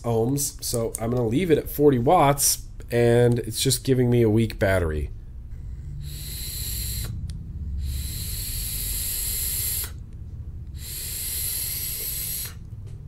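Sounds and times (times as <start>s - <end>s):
vapor breathed out: 5.5s - 10.1s, 10.7s - 12.8s
e-cigarette hissing puffs: 6.0s - 7.2s, 7.8s - 10.0s, 10.7s - 12.7s.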